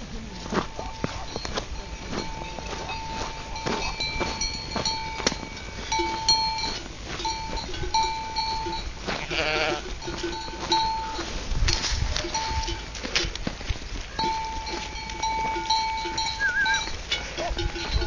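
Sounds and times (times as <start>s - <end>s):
sheep bells ringing: 0.0s - 18.0s
sheep bleating: 9.1s - 9.9s, 16.4s - 17.6s.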